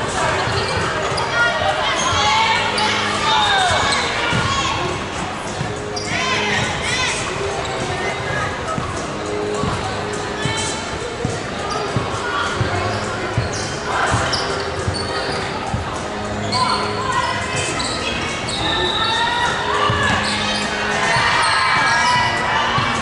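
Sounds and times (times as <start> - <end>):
basketball shoes squeaking: 0.0 - 23.0.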